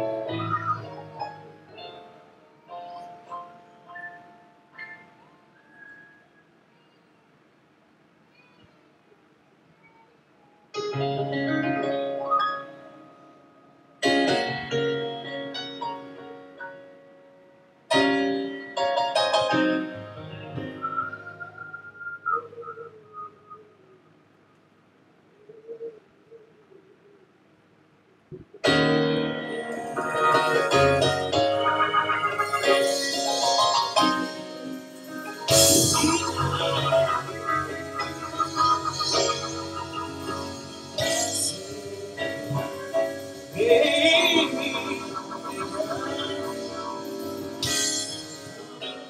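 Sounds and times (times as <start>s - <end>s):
soft keyboard music: 0.0s - 6.9s, 10.4s - 23.8s, 28.4s - 49.0s.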